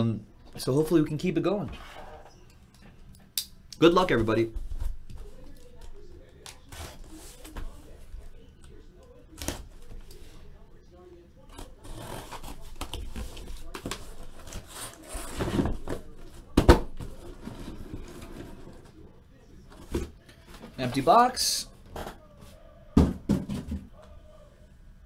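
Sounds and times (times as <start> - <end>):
cardboard scraping and rustling: 11.6 - 19.0.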